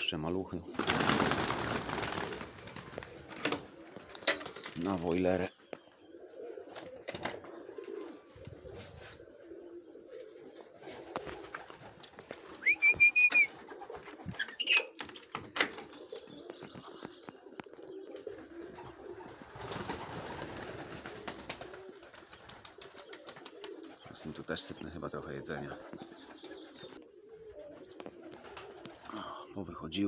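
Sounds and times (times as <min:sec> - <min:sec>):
pigeons cooing: 0:00.6 - 0:29.6.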